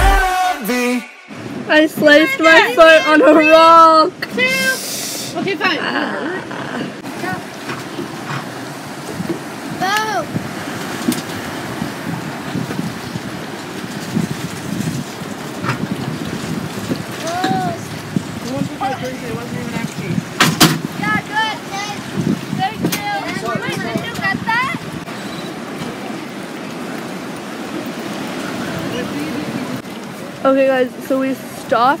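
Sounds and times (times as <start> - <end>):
waves washing: 0.0 - 32.0
wind: 0.0 - 32.0
people calling out: 2.0 - 7.5, 21.0 - 25.0.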